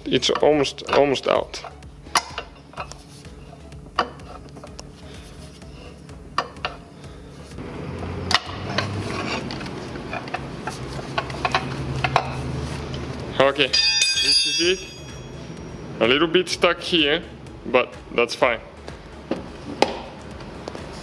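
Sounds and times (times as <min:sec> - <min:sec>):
short metallic ring: 0:13.7 - 0:15.5.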